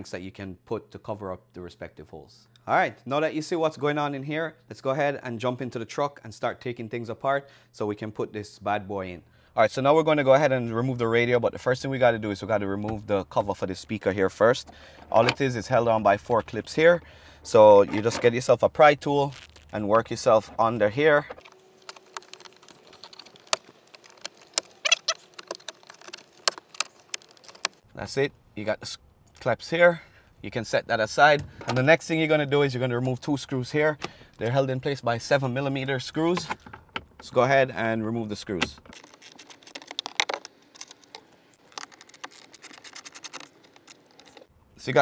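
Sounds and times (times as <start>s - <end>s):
screwdriver clicks and scrapes: 38.9s - 44.5s.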